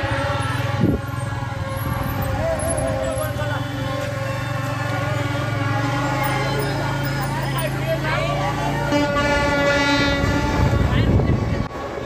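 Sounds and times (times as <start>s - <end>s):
horn blast: 8.8s - 11.6s.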